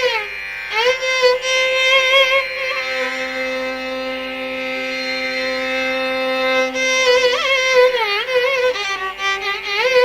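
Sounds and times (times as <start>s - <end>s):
classical melody with drone note: 0.0s - 10.0s.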